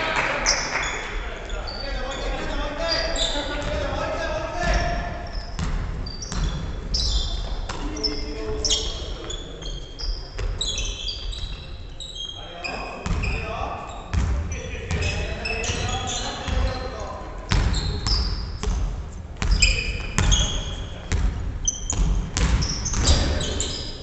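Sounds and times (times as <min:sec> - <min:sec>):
sneakers squeaking: 0:00.0 - 0:24.0
ball bouncing: 0:04.6 - 0:08.0, 0:21.1 - 0:23.3.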